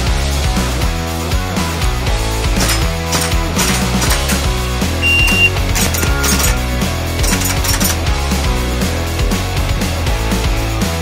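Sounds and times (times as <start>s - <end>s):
rock music: 0.0s - 11.0s
airsoft rifle shots clacking: 2.6s - 8.1s.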